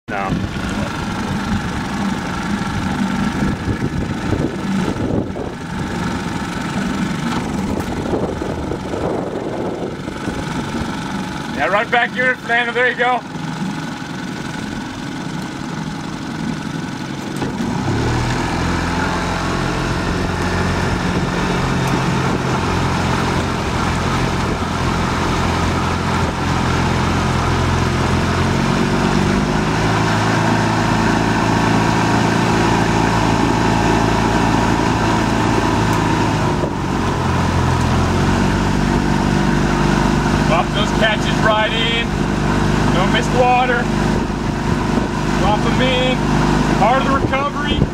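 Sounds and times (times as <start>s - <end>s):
motorboat engine running: 0.0s - 47.9s.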